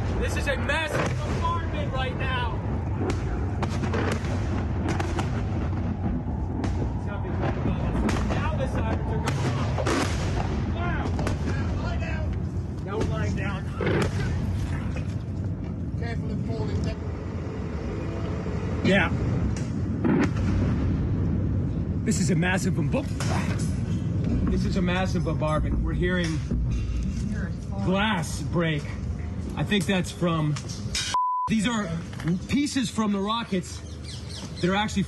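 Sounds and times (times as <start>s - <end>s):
low rumble: 0.0s - 29.5s
rocket barrage blasts and booms: 0.9s - 12.1s, 19.8s - 21.7s.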